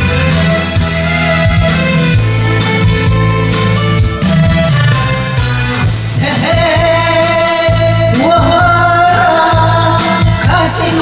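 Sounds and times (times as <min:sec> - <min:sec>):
karaoke backing track: 0:00.0 - 0:11.0
woman singing into microphone: 0:05.9 - 0:11.0.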